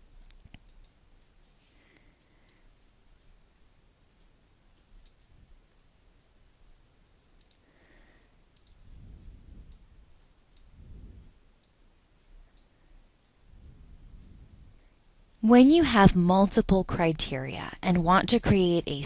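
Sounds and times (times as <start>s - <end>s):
faint computer mouse clicks: 0.2s - 2.7s, 4.8s - 5.3s, 7.0s - 8.9s, 11.6s - 12.8s.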